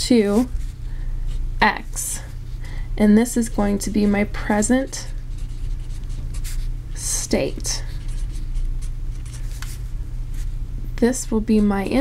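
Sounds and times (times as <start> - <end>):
steady low hum: 0.0 - 12.0
marker scratching on paper: 3.4 - 9.8.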